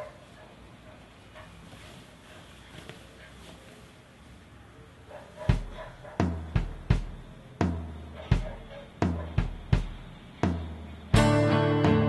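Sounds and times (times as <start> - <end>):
bass drum and snare beat: 5.5 - 12.0.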